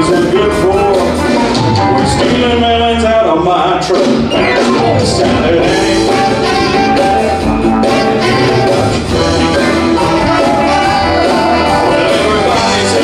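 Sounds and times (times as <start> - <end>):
drum kit: 0.0 - 13.0
electric guitars: 0.0 - 13.0.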